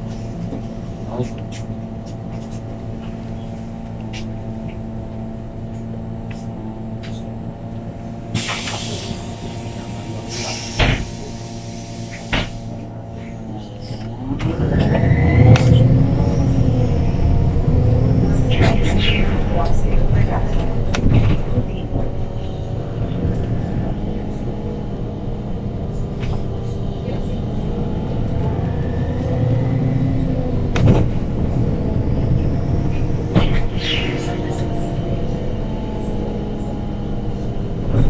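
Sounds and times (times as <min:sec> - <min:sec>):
bus engine under load: 0:00.0 - 0:38.0
knocks and rattles from bus body: 0:20.4 - 0:23.5, 0:30.7 - 0:31.4.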